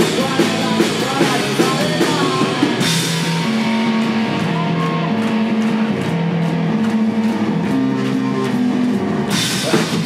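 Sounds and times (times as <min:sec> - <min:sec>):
rock band playing chords: 0:00.0 - 0:10.0.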